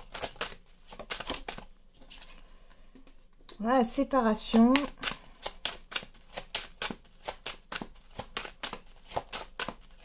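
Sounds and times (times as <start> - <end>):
cards being shuffled: 0.0 - 2.4, 4.4 - 10.0.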